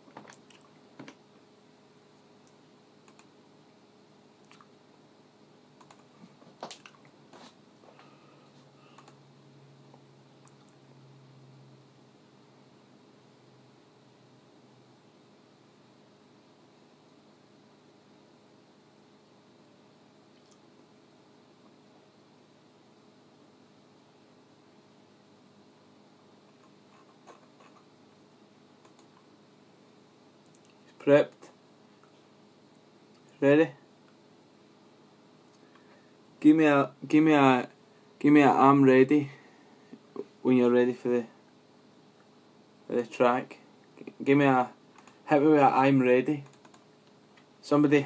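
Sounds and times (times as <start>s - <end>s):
low room hiss: 0.0s - 48.0s
low steady hum: 0.0s - 48.0s
faint computer clicks: 2.4s - 3.3s, 5.8s - 7.1s, 8.9s - 9.2s, 28.8s - 29.3s, 45.0s - 45.2s, 46.4s - 47.5s
computer keyboard clicks: 3.1s - 3.3s, 5.8s - 6.1s, 9.0s - 9.2s, 28.8s - 29.2s, 46.4s - 46.8s.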